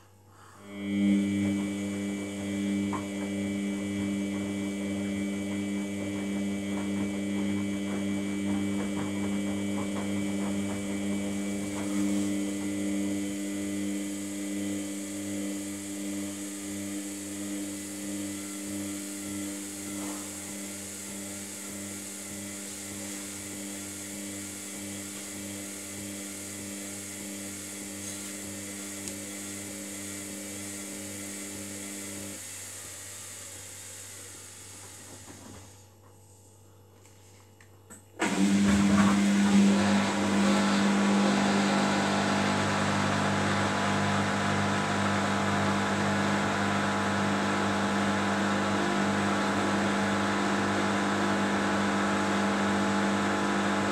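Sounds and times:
washing machine pump humming: 0.6s - 53.9s.

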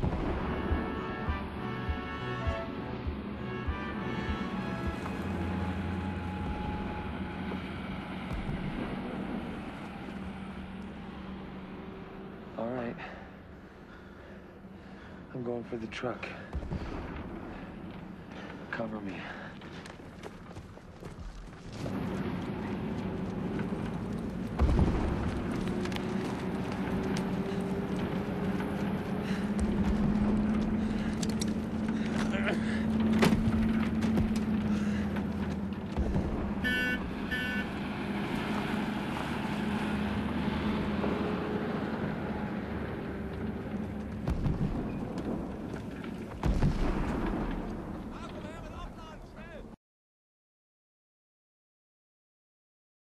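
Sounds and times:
truck engine running: 21.7s - 46.4s.

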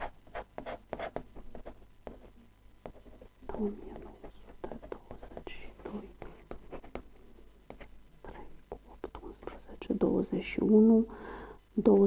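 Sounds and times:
pen scratching on paper: 0.0s - 3.3s.

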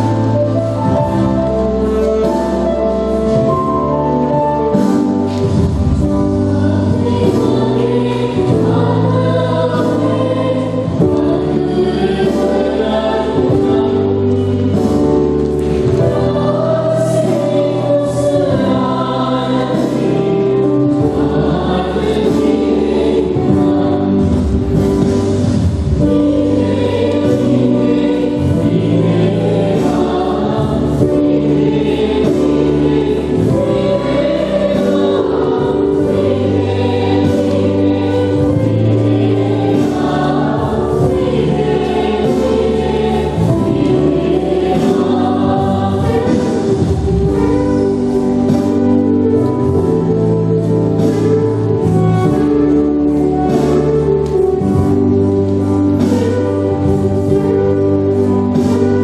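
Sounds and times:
choir singing a hymn: 0.0s - 59.0s
instrumental accompaniment: 0.0s - 59.0s.

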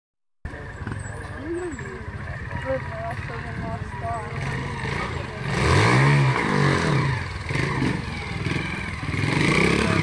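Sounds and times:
motorcycle engine idling: 0.5s - 10.0s.

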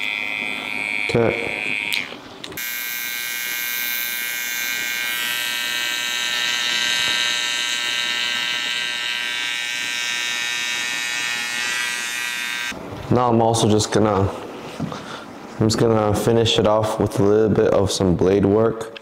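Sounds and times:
hair trimmer buzzing: 0.0s - 12.8s.

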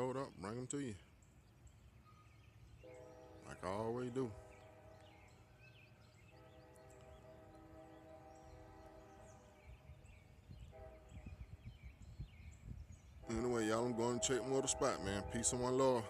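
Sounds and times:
distant bird chirps: 0.0s - 16.0s
wind rumble on microphone: 6.8s - 15.8s.

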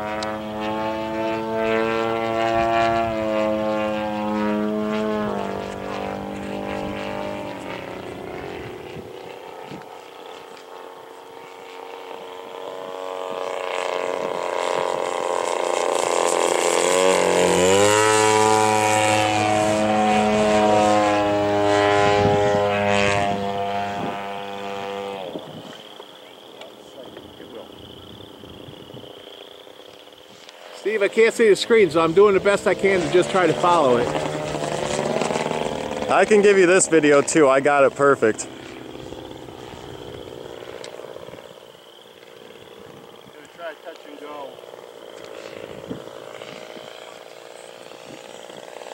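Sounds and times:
model plane engine and propeller: 0.0s - 48.9s.

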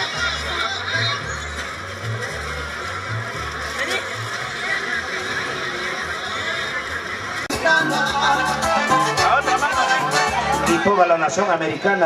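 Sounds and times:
crowd chattering and calling out: 0.0s - 12.0s.

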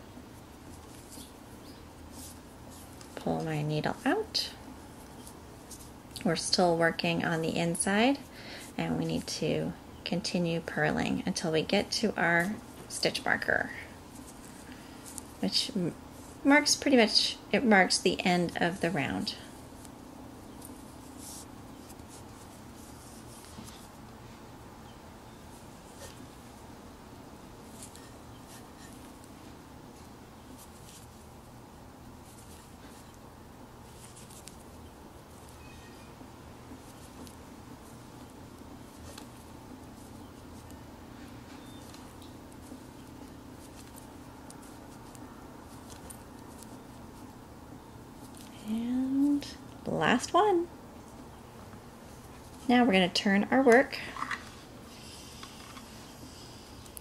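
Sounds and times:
steady low hum: 0.0s - 57.0s
knitting needles scratching: 0.4s - 9.5s, 10.3s - 24.1s, 25.5s - 26.3s, 27.6s - 31.4s, 32.0s - 33.2s, 33.8s - 47.5s, 48.2s - 49.5s, 52.0s - 57.0s.

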